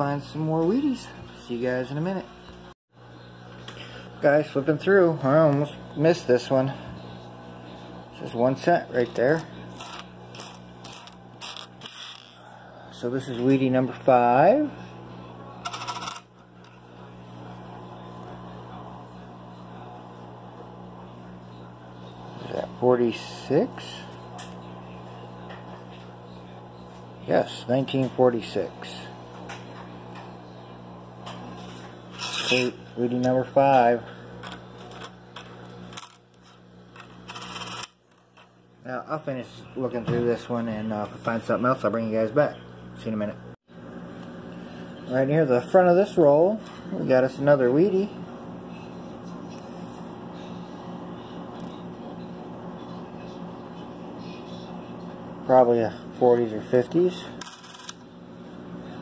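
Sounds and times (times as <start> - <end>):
steady low hum: 0.0 - 59.0
coins clinking on wooden table: 9.8 - 12.2, 15.6 - 16.3, 34.4 - 36.2, 37.0 - 38.0, 57.4 - 58.0
coins clicking on wooden table: 15.6 - 16.2, 37.0 - 37.9, 57.4 - 58.0.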